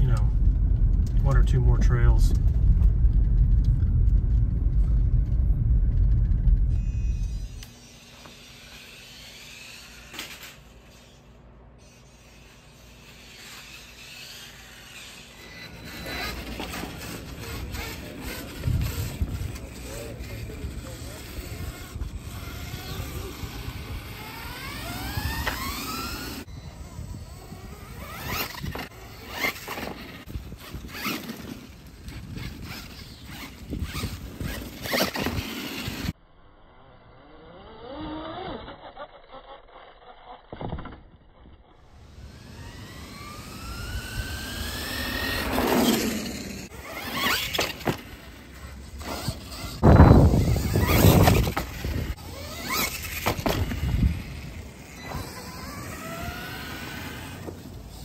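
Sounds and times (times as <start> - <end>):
toy truck motor whining: 6.7 - 36.2, 36.8 - 58.0
tyre squeal: 11.8 - 18.8, 42.8 - 53.9.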